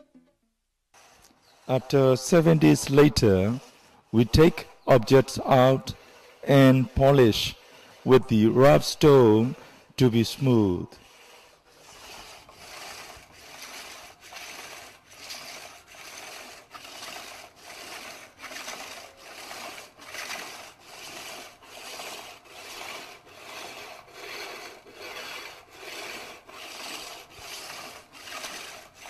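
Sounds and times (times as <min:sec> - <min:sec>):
stone scraping on lacquer: 0:01.0 - 0:29.0.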